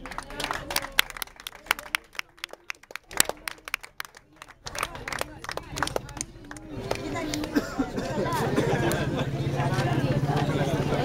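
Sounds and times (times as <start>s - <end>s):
faint talking: 0.0s - 11.0s
sparse applause: 0.0s - 11.0s.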